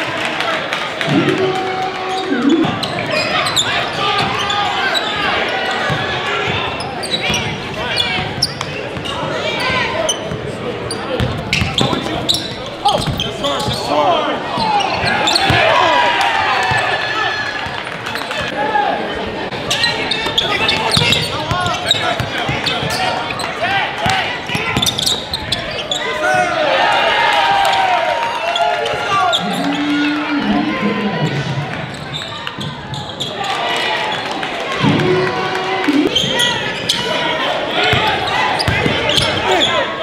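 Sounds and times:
people talking and shouting: 0:00.0 - 0:40.0
sneaker squeaks: 0:02.0 - 0:05.3, 0:05.9 - 0:15.6, 0:19.7 - 0:26.4, 0:31.9 - 0:33.5, 0:36.0 - 0:37.2, 0:37.8 - 0:40.0.

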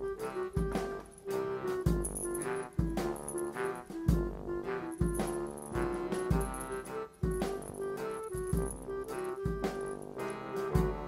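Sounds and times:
upbeat background music: 0:00.0 - 0:11.0.

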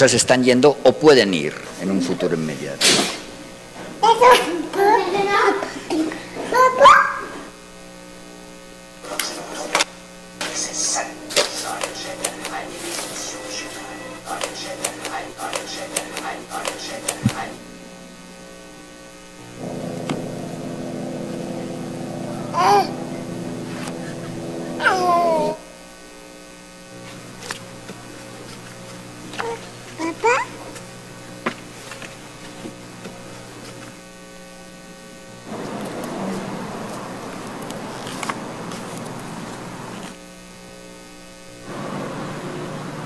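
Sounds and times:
electrical mains hum: 0:00.0 - 0:43.0
baby vocal sound sliding down: 0:22.4 - 0:23.1, 0:23.7 - 0:25.6
baby squealing: 0:22.5 - 0:22.9.

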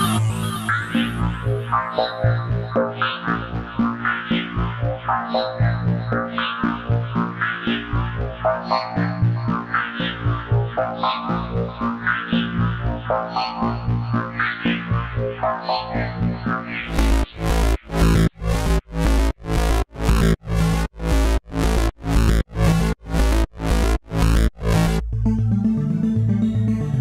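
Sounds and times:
pulsing synth notes: 0:16.0 - 0:27.0.

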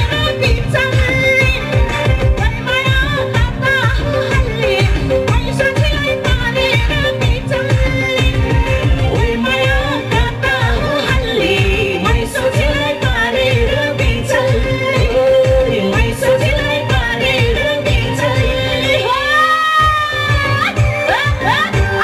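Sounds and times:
amplified backing music: 0:00.0 - 0:22.0
woman singing into microphone: 0:00.0 - 0:22.0.

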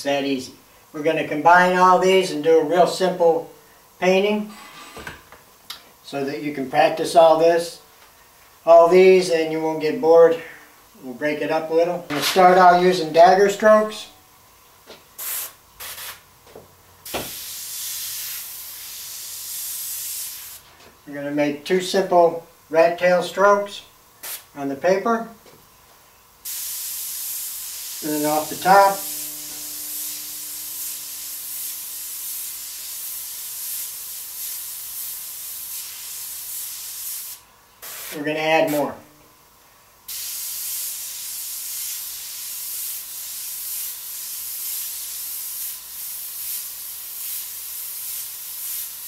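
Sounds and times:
airbrush spraying hiss: 0:15.2 - 0:16.2, 0:17.0 - 0:20.7, 0:24.2 - 0:24.5, 0:26.4 - 0:39.0, 0:40.1 - 0:49.0.

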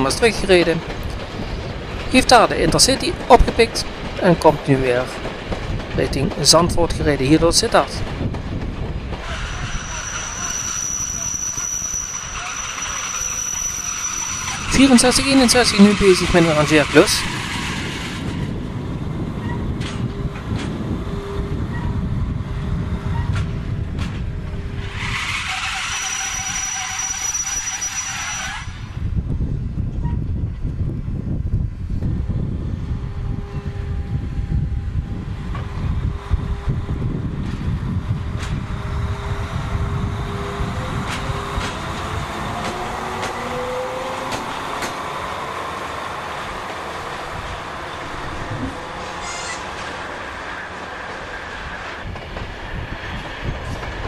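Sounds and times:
diesel locomotive engine rumbling: 0:00.0 - 0:54.0.

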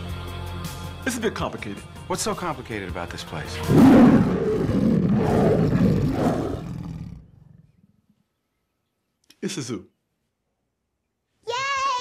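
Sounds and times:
lion roaring: 0:03.6 - 0:07.8.

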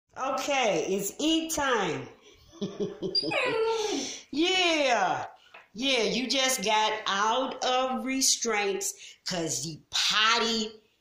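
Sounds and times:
puppy whimpering: 0:03.2 - 0:03.8.

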